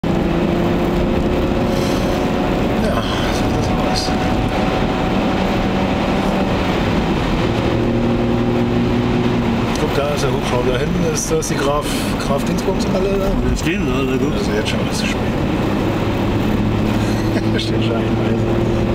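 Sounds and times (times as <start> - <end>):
car engine running in cabin: 0.0 - 18.9
tyre noise on wet road: 0.0 - 18.9.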